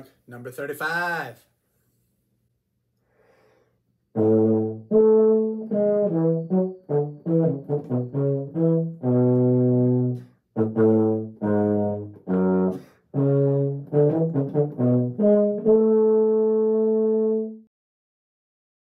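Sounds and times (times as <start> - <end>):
player breathing: 3.0 - 4.0
baritone horn playing scale: 4.1 - 17.7.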